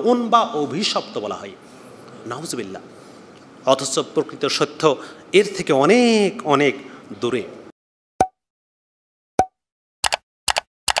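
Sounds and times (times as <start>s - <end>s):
quick double clicks: 10.0s - 11.0s.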